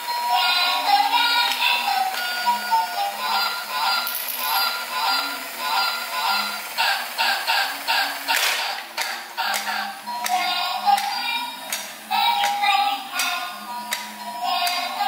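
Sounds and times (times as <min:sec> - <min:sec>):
tinny electronic toy tune: 0:00.0 - 0:08.3.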